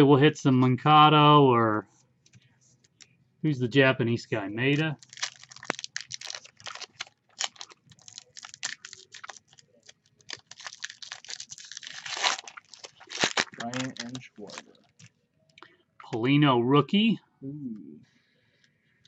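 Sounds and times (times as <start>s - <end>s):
foil wrapper crinkling: 5.0s - 15.1s
foil wrapper tearing: 5.0s - 15.1s.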